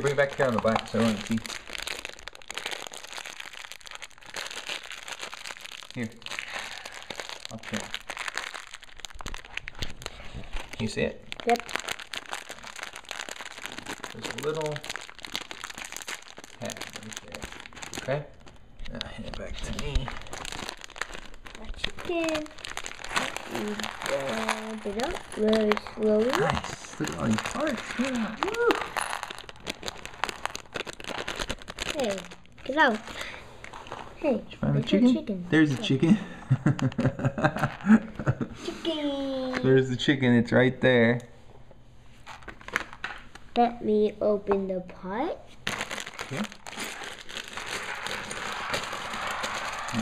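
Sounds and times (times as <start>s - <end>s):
plastic bag crinkling: 0.0s - 34.2s, 35.5s - 38.3s, 42.2s - 43.5s, 45.6s - 50.0s.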